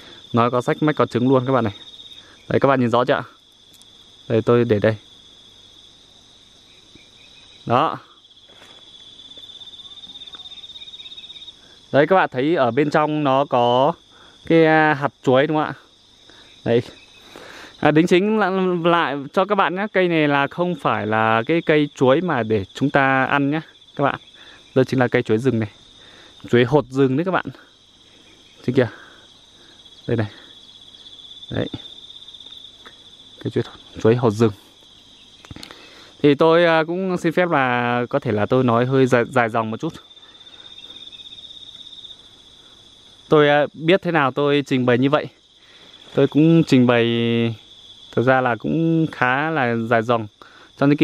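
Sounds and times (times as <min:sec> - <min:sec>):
insect trill: 0:00.0 - 0:51.0
pulsing insect call: 0:00.0 - 0:51.0
man speaking: 0:00.3 - 0:01.8, 0:02.5 - 0:03.4, 0:04.3 - 0:05.0, 0:07.7 - 0:08.2, 0:11.9 - 0:15.9, 0:16.6 - 0:17.0, 0:17.8 - 0:24.2, 0:24.8 - 0:25.8, 0:26.4 - 0:27.7, 0:28.6 - 0:29.2, 0:30.0 - 0:30.5, 0:31.5 - 0:31.8, 0:33.4 - 0:34.7, 0:36.2 - 0:40.1, 0:43.3 - 0:45.4, 0:46.1 - 0:47.6, 0:48.2 - 0:51.0.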